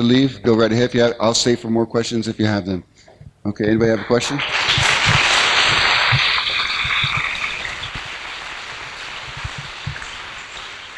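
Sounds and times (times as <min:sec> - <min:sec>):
audience applauding: 0:03.9 - 0:10.9.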